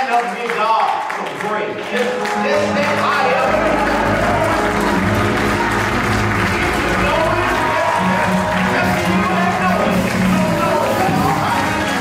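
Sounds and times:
applause: 0.0 - 12.0
church music with sustained chords: 1.8 - 12.0.

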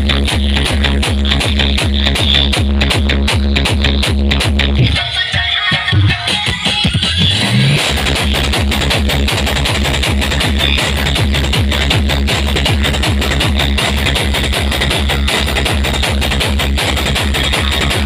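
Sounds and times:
electronic dance music: 0.0 - 18.0
heavy bass beat: 0.0 - 18.0.

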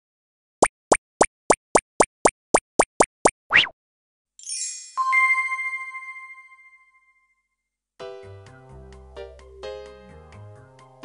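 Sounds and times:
cartoon plops: 0.6 - 3.8.

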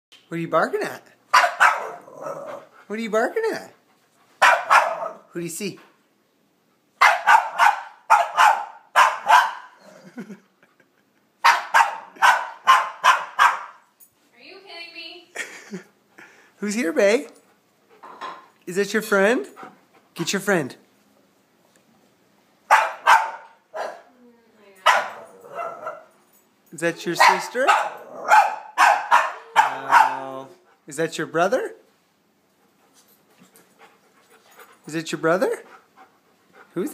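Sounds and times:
dog barking: 1.3 - 2.6, 4.4 - 5.3, 7.0 - 9.8, 11.4 - 13.9, 22.7 - 24.1, 24.8 - 26.1, 27.2 - 30.4.

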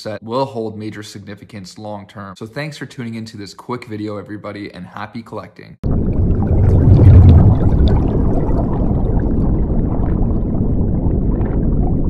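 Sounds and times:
muffled underwater rush: 5.8 - 12.0.

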